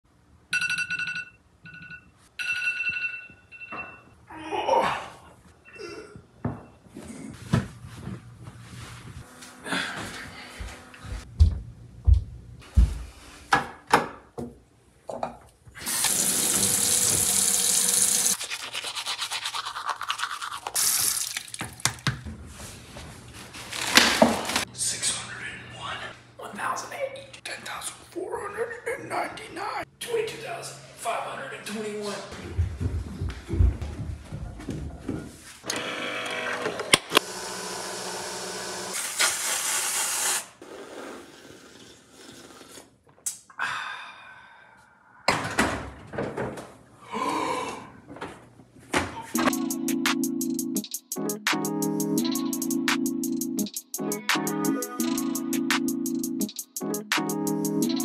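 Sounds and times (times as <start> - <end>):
smartphone alarm ringing: 0.6 - 4.1
toothbrush scrubbing: 18.2 - 21.4.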